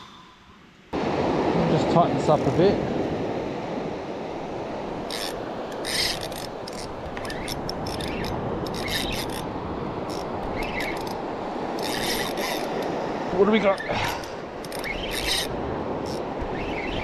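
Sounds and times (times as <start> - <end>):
surf washing: 0.0 - 17.0
fishing reel rasping: 5.1 - 13.0, 13.8 - 16.9.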